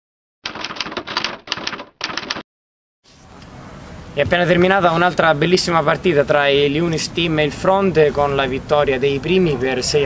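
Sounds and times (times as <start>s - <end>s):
typewriter key strikes: 0.5s - 2.4s.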